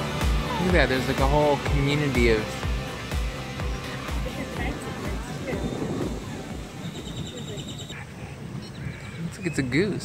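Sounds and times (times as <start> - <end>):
outdoor background: 0.0 - 10.0
low voices: 3.6 - 9.8
small bird trilling: 6.7 - 8.0.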